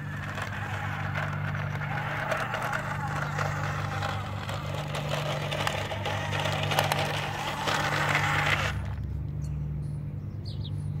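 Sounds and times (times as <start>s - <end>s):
toy truck motor whirring: 0.0s - 9.0s
stones crunching under tyres: 0.0s - 9.1s
steady low hum: 0.0s - 11.0s.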